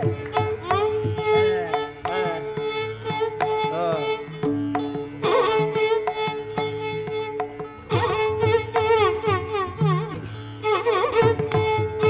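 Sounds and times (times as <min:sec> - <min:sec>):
mridangam strokes: 0:00.0 - 0:12.0.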